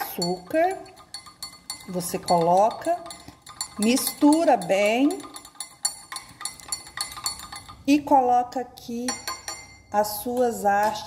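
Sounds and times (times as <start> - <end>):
spoon clinking in a glass: 0.0 - 8.0, 9.1 - 10.0.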